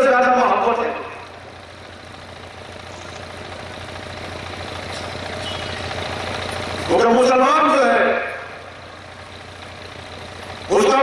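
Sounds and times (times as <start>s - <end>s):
low engine-like rumble with hiss: 0.0s - 11.0s.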